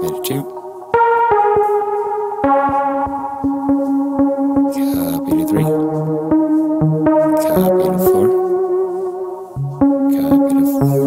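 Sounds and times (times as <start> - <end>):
buzzy synthesizer melody: 0.0 - 11.0.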